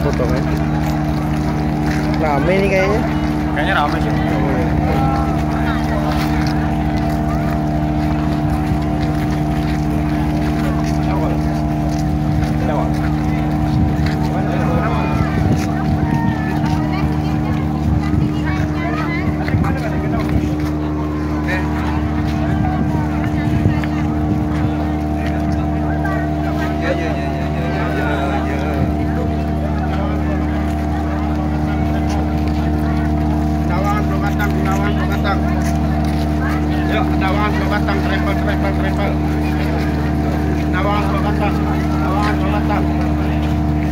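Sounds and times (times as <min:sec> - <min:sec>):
crowd chatter: 0:00.0 - 0:43.9
ship machinery hum: 0:00.0 - 0:43.9.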